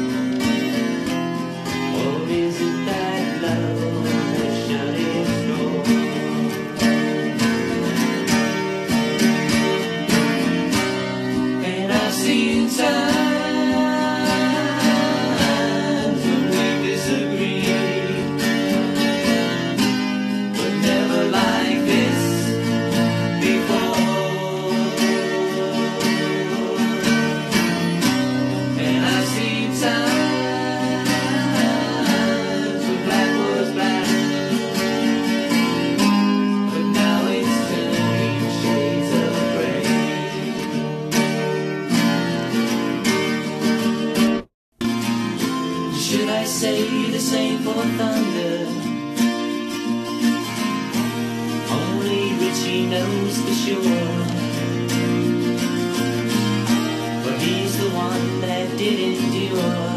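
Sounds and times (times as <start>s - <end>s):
acoustic guitar strumming chords: 0.0s - 59.9s.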